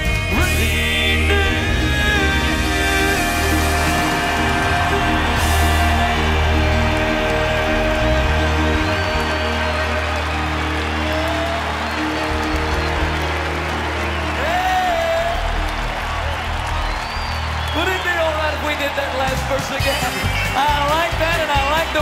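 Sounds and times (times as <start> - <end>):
audience clapping and cheering: 0.0 - 22.0
gospel band with piano: 0.0 - 22.0.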